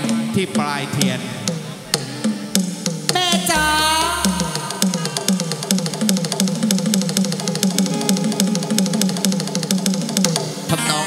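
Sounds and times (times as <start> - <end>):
fast drum beat: 0.0 - 10.6
live band playing: 0.0 - 11.0.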